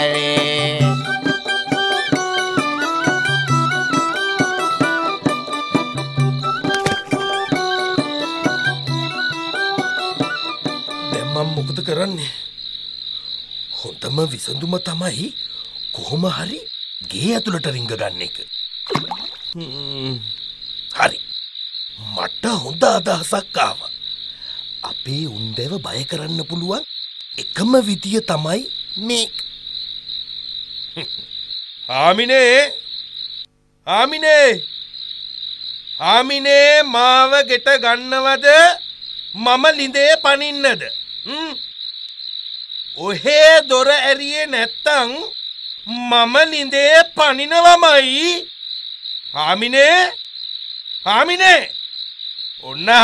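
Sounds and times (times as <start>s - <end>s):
crickets chirring: 0.0s - 53.0s
voice: 11.1s - 12.4s, 13.8s - 15.4s, 16.0s - 18.4s, 19.6s - 20.3s, 20.9s - 21.2s, 22.0s - 23.9s, 24.9s - 26.8s, 27.4s - 29.4s, 31.9s - 32.8s, 33.9s - 34.6s, 36.0s - 38.8s, 39.4s - 41.6s, 43.0s - 45.3s, 45.9s - 48.5s, 49.4s - 50.2s, 51.1s - 51.7s, 52.6s - 53.0s
man's drawn-out vocalizing: 19.6s - 20.3s, 41.3s - 41.6s.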